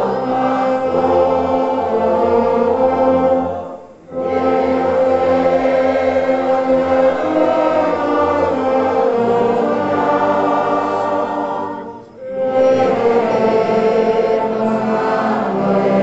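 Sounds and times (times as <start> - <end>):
congregation singing a hymn: 0.0 - 16.0
orchestra playing: 0.0 - 16.0.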